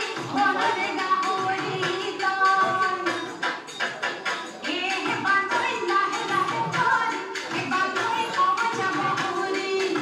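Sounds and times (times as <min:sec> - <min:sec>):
rapid drum beats: 0:00.0 - 0:10.0.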